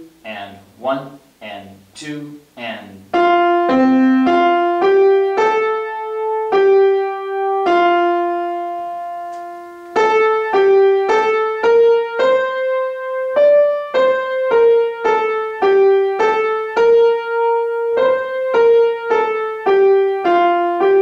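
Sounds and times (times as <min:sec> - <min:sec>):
piano melody single notes: 0:02.7 - 0:21.0.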